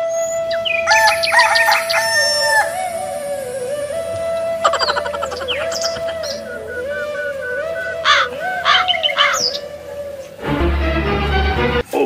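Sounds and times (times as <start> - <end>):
bird call: 0.0 - 10.4
flute melody: 0.0 - 11.9
rooster crowing: 0.6 - 10.2.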